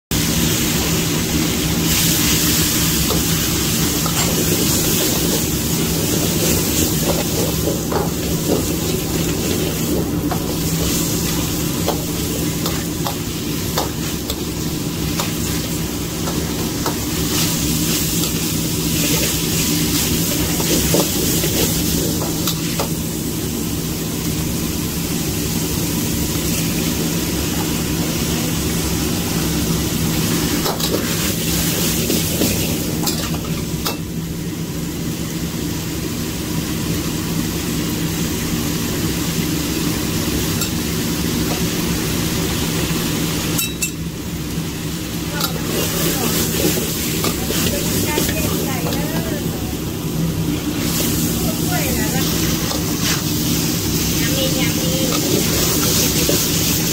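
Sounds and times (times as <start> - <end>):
food sizzling in a wok: 0.1 - 56.9.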